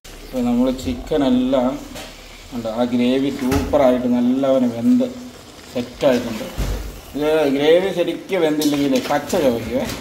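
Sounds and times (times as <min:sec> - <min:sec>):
curry sizzling in a pot: 0:00.1 - 0:10.0.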